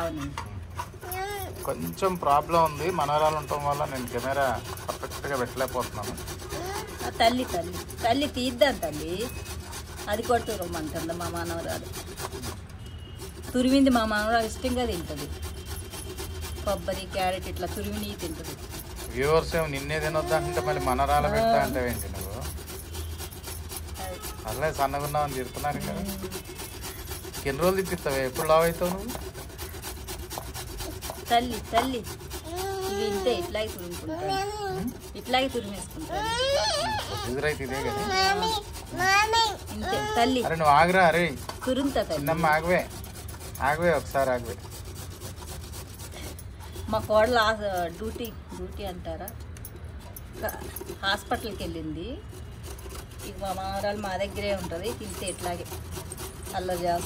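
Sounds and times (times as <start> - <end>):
coconut scraping on metal grater: 0.0 - 57.0.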